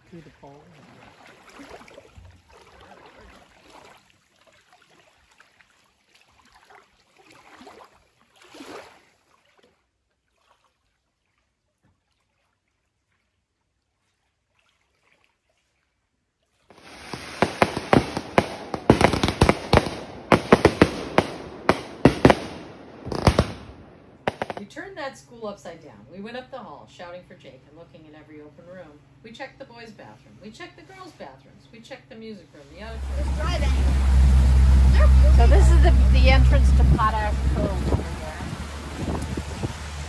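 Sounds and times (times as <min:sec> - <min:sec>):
faint lapping water: 0:00.0 - 0:40.0
fireworks bangs and crackles: 0:16.7 - 0:24.6.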